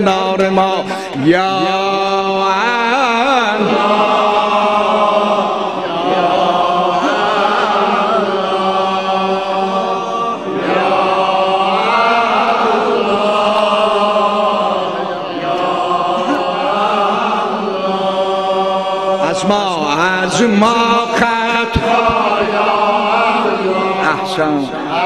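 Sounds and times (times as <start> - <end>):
men chanting devotional supplication: 0.0 - 25.0.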